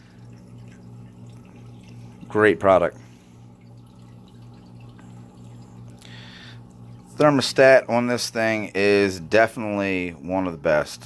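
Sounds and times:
water trickling and dripping: 0:00.0 - 0:08.9
filter pump hum: 0:00.0 - 0:11.0.

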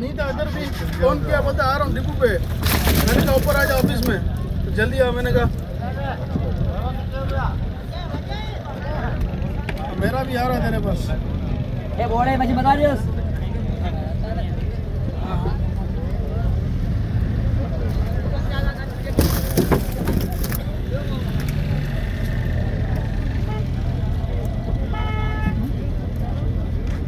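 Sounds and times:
men talking: 0:00.0 - 0:24.8
boat engine rumbling: 0:00.0 - 0:27.0.

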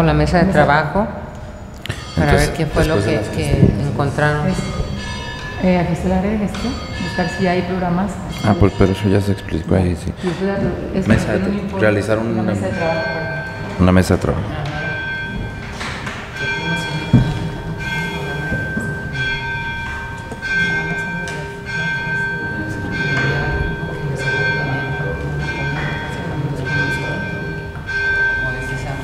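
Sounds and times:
bell ringing: 0:01.3 - 0:29.0.

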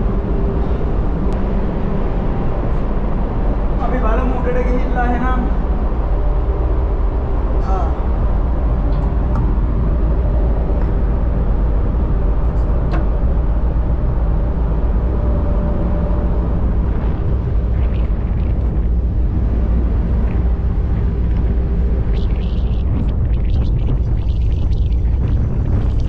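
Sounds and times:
ship engines rumbling: 0:00.0 - 0:26.0.

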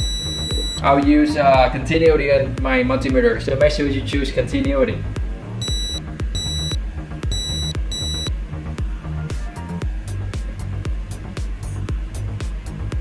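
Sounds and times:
multimeter beeps: 0:00.0 - 0:00.8, 0:05.6 - 0:08.3
background music beat: 0:00.0 - 0:13.0.

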